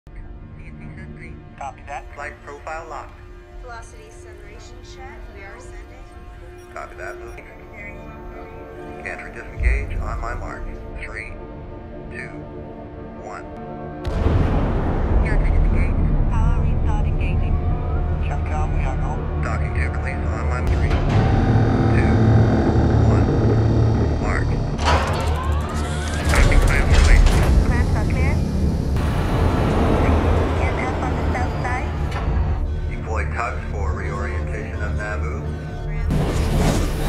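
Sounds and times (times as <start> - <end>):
dramatic orchestral score: 0.2 - 37.0
deep steady rumble: 14.1 - 36.0.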